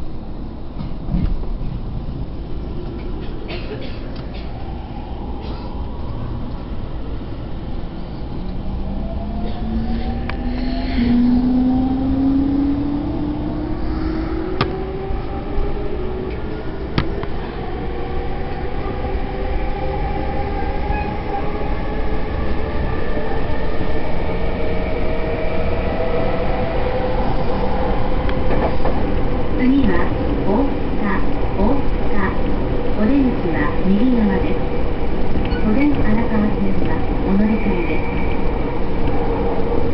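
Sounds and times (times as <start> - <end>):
wheels rumbling on rail: 0.0 - 39.9.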